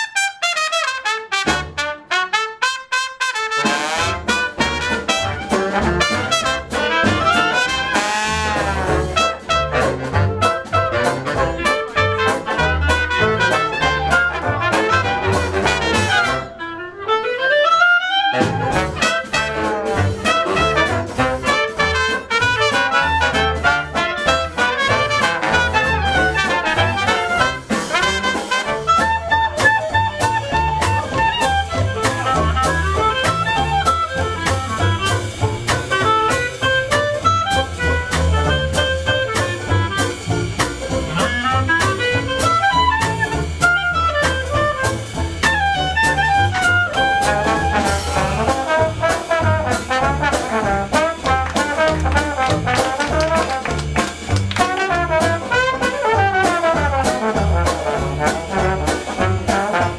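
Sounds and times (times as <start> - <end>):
dixieland jazz band playing: 0.0 - 59.9.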